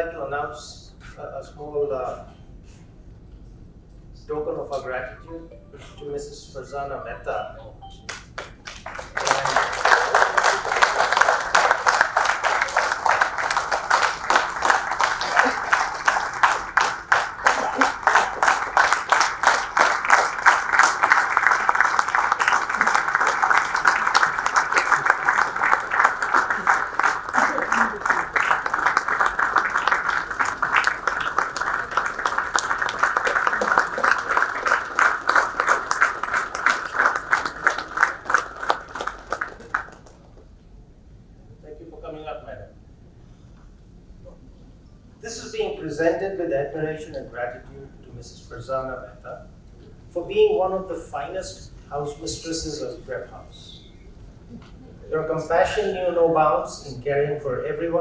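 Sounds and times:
audience applauding: 8.1s - 40.4s.

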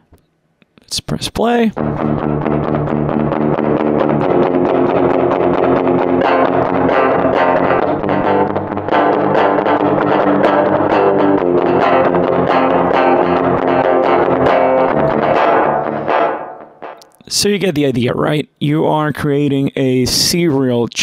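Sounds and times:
electric guitar with effects: 1.7s - 17.3s.

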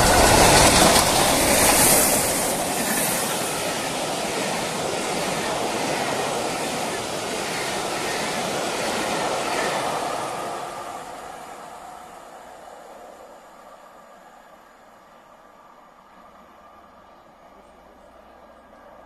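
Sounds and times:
train coaches rumbling past: 0.0s - 19.0s.

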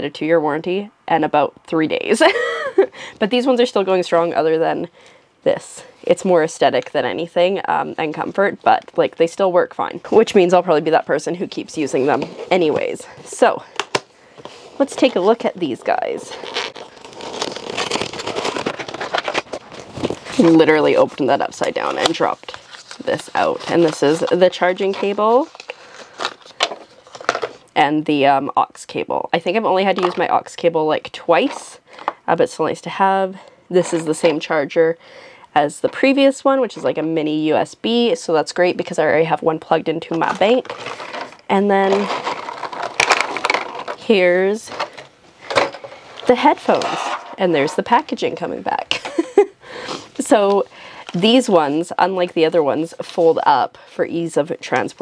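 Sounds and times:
plastic packaging crackling: 13.7s - 27.7s, 40.3s - 44.0s
cardboard box rustling and scraping: 16.0s - 20.6s.

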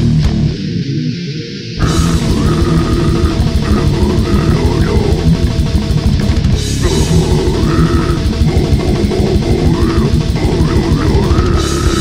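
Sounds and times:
death metal music: 0.0s - 12.0s
high guitar line sliding and bending: 0.0s - 12.0s
fast dense drumming: 1.8s - 12.0s.

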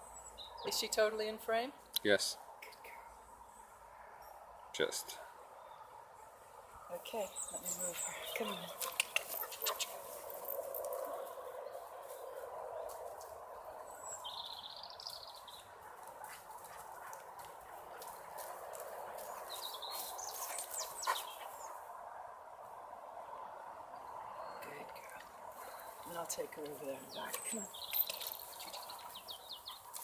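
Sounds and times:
bird chirps: 13.8s - 15.7s, 24.4s - 30.0s.

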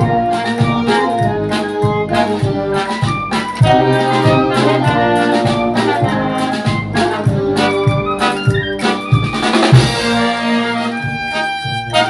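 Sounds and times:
drum kit and percussion: 0.0s - 12.0s
trumpets and trombones: 0.0s - 12.0s.

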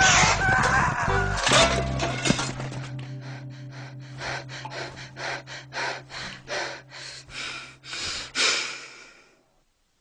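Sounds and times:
man breathing hard: 3.0s - 9.4s.

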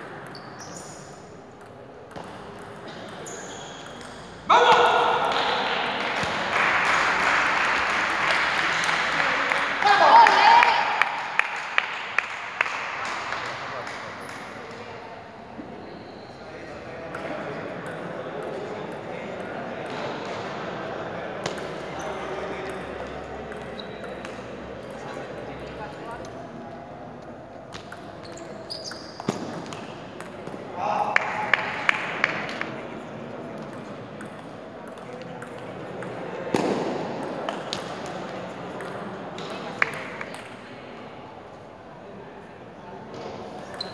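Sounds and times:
murmur of voices: 0.9s - 43.9s
table tennis balls clicking: 33.6s - 37.9s.

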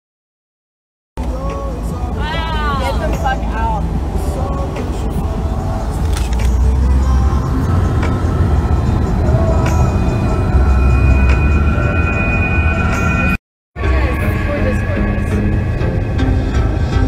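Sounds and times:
road and wind noise in car: 1.2s - 17.0s.

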